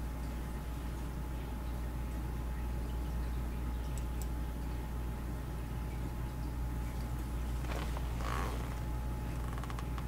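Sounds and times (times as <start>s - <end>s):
low electrical hum: 0.0s - 10.0s
rustle or creak: 7.6s - 10.0s.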